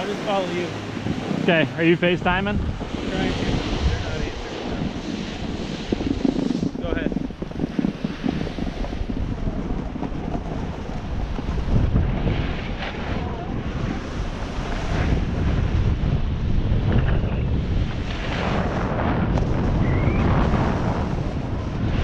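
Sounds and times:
board edge scraping snow: 0:00.0 - 0:22.0
snowboard sliding on snow: 0:00.0 - 0:22.0
wind buffeting microphone: 0:00.0 - 0:22.0.

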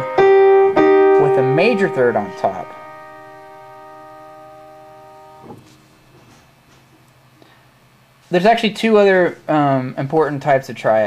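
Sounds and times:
piano chord ringing: 0:00.0 - 0:05.7
piano keys released knock: 0:05.4 - 0:05.8.

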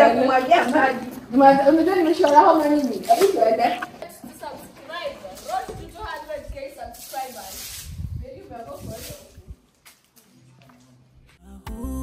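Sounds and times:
people talking: 0:00.0 - 0:09.5.

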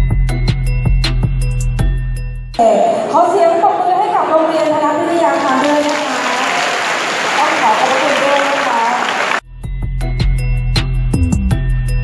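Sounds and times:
woman speaking over microphone: 0:02.6 - 0:06.7, 0:07.4 - 0:09.2
audience clapping: 0:05.2 - 0:09.4.

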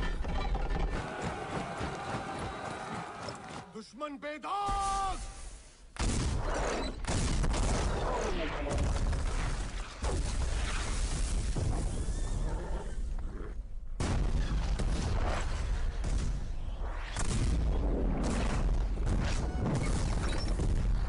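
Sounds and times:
cannon fire and explosions: 0:04.8 - 0:12.4, 0:13.9 - 0:21.0.

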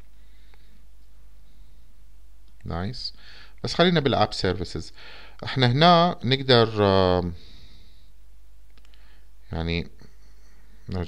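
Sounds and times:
low steady hum: 0:00.0 - 0:11.0
faint computer mouse clicks: 0:08.7 - 0:09.0.

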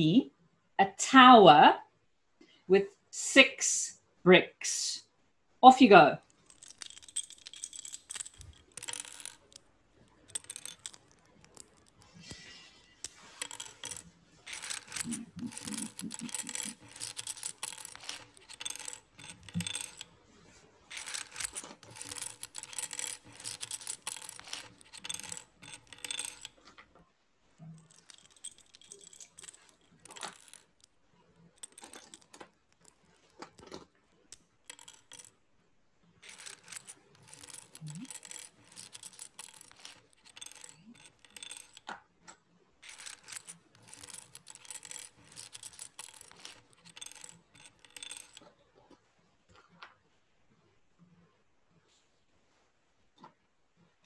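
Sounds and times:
plastic bricks clattering: 0:06.2 - 0:20.2, 0:20.8 - 0:26.8, 0:27.6 - 0:30.9, 0:31.5 - 0:35.3, 0:36.2 - 0:42.0, 0:42.8 - 0:48.5.

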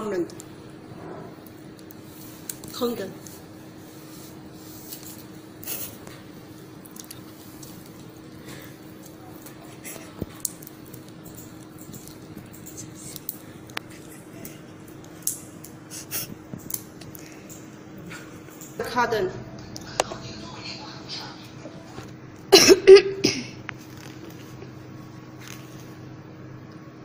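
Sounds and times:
steady low hum: 0:00.0 - 0:27.0
plastic cover rustling and crinkling: 0:23.8 - 0:24.6.

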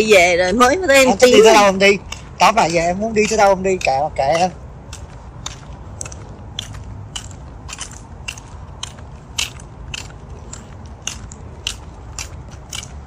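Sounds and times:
footsteps on pavement: 0:00.0 - 0:13.0.

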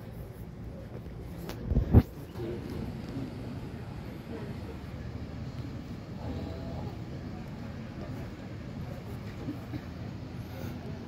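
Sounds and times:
faint background voices: 0:00.0 - 0:11.0
low indoor room rumble: 0:00.0 - 0:11.0.

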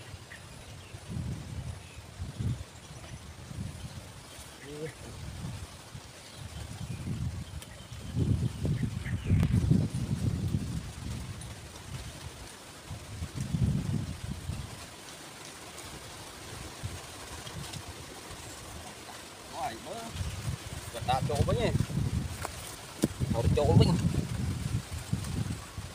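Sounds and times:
wind buffeting microphone: 0:00.0 - 0:15.0, 0:16.0 - 0:25.9.

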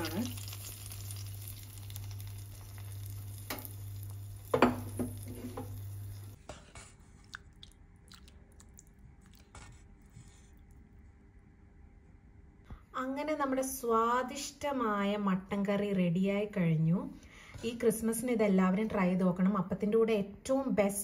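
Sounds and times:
spoon knocking pan: 0:04.4 - 0:05.8.

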